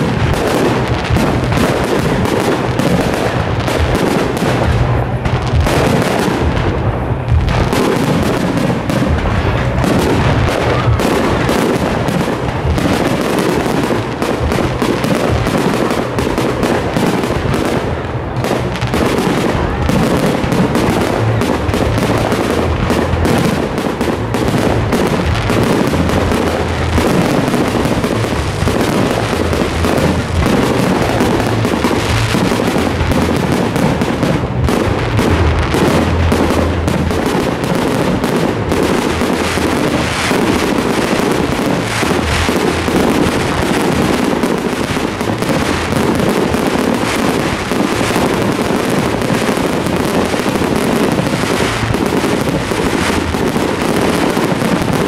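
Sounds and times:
fireworks bangs and crackles: 0:00.0 - 0:55.0.

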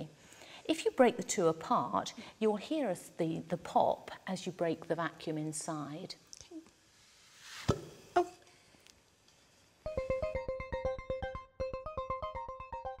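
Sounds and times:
quick plucked note music: 0:09.9 - 0:13.0.

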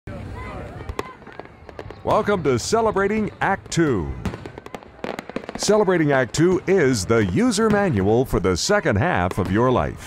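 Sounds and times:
faint background voices: 0:00.1 - 0:10.0
firework pops: 0:00.8 - 0:02.2
firework bang: 0:04.2 - 0:06.7.

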